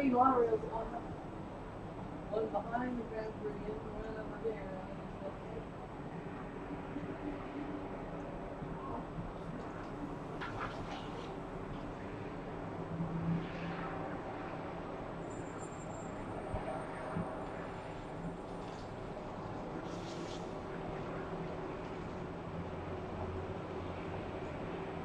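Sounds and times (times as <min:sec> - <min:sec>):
distant road traffic hum: 0:00.0 - 0:25.0.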